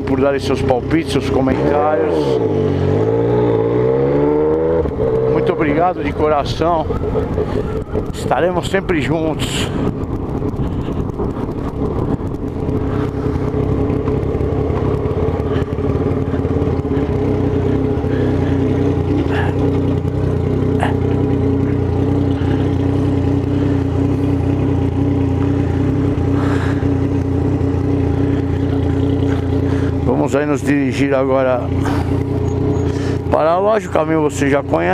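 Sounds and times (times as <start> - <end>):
motorcycle engine idling: 0.0 - 34.9.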